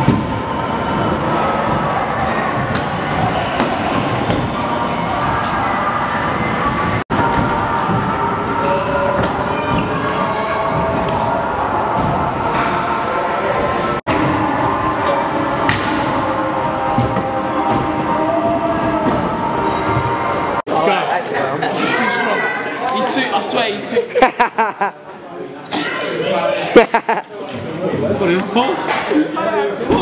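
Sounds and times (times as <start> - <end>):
echoing chatter: 0.0 - 30.0.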